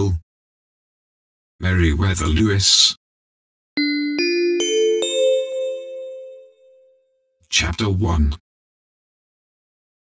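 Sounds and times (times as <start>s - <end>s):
bell-like chime note: 3.8s - 7.0s.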